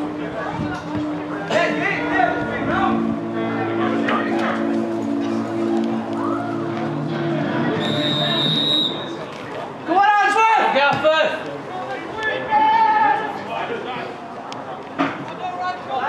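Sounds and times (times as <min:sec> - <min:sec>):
referee's whistle: 0:07.8 - 0:09.2
players shouting: 0:12.0 - 0:13.5.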